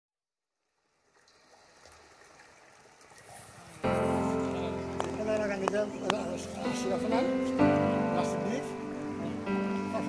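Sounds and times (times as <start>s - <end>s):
faint outdoor hiss: 0.6s - 10.0s
music with sustained tones: 3.8s - 10.0s.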